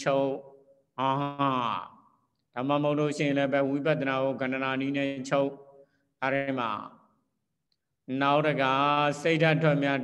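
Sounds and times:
man speaking: 0.0s - 7.1s, 8.0s - 10.0s.

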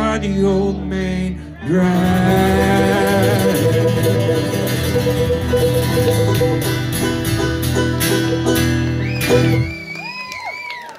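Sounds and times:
acoustic string band playing: 1.8s - 9.8s
whistle rising and falling: 8.9s - 10.9s.

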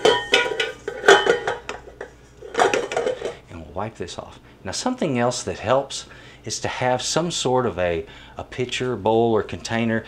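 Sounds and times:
metal bowl clanking and ringing: 0.0s - 3.4s.

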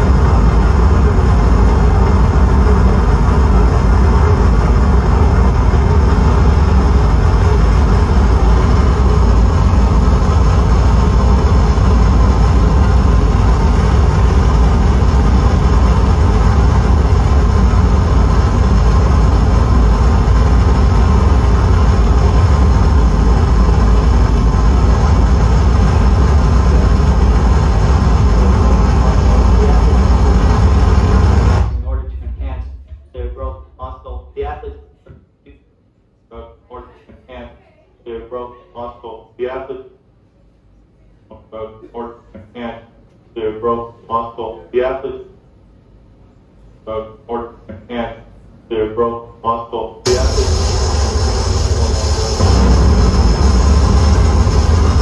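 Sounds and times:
wall of distorted noise: 0.0s - 55.0s.

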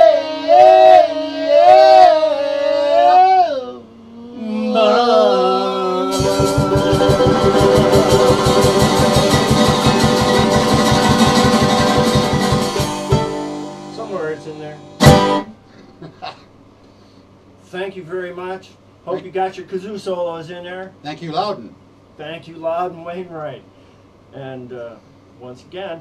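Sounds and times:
loud sharp hit: 6.1s - 13.6s
mandolin and guitar strumming: 6.1s - 15.6s.

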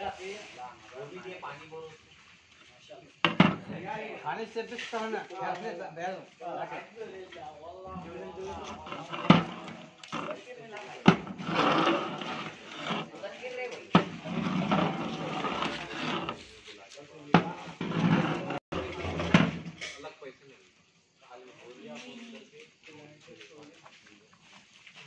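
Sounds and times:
stirring rice and water: 7.8s - 19.6s.

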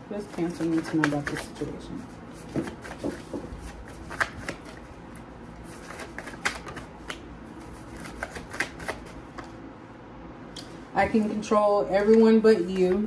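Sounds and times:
cards being shuffled: 0.2s - 9.6s.

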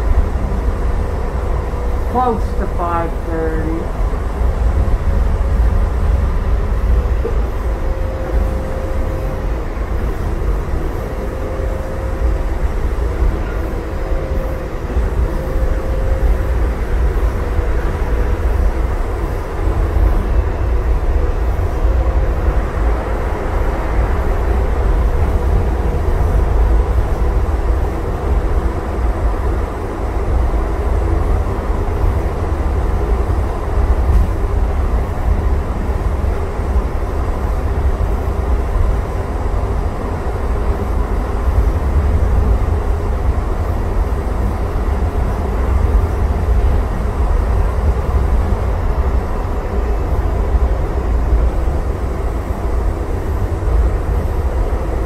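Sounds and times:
faint whine: 0.0s - 55.0s.

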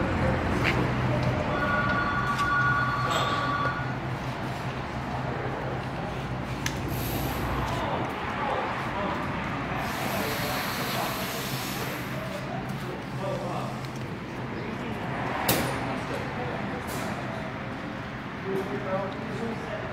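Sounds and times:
continuous mechanical noise: 0.0s - 19.9s.

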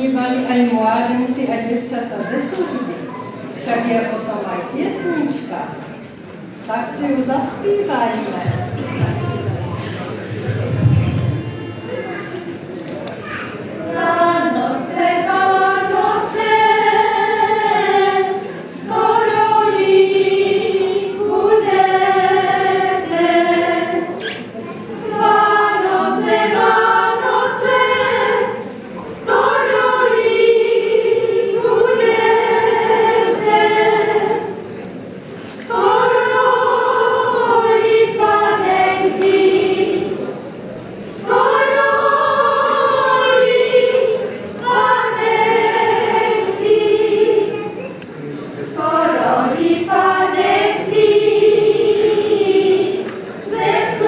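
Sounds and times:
women singing unaccompanied: 13.9s - 24.2s, 25.1s - 34.6s, 35.5s - 40.3s, 41.1s - 47.8s, 48.6s - 54.0s.

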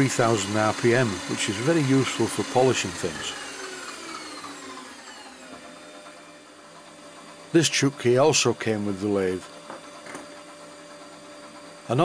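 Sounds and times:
lathe motor whine: 0.0s - 12.0s.

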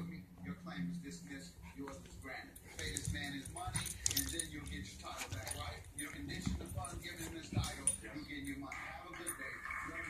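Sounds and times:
television voices: 0.0s - 10.0s.

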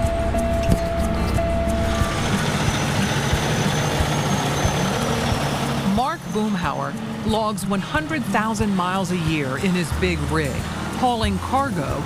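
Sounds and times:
steady high tone: 0.0s - 10.0s
background music: 0.0s - 12.0s
diesel truck engine running: 0.0s - 12.0s.

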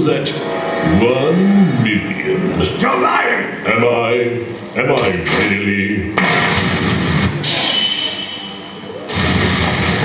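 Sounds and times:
steady high tone: 7.4s - 9.2s
rumbling explosion: 9.1s - 10.0s.

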